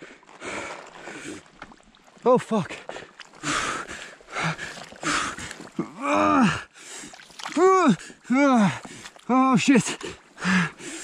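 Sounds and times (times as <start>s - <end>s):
wet mud sloshing: 0.0s - 11.0s
man gasping: 2.8s - 9.2s, 10.0s - 11.0s
man groaning: 5.8s - 6.7s, 7.5s - 9.6s.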